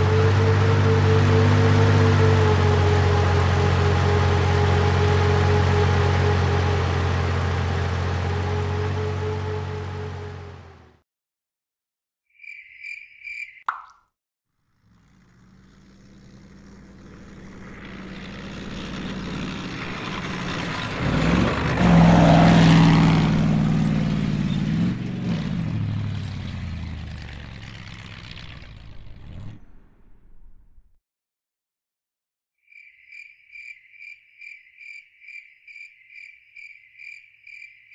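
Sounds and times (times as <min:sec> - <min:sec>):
bulldozer diesel engine: 0:00.0 - 0:11.0, 0:14.9 - 0:30.3
water drop plop: 0:13.6 - 0:14.1.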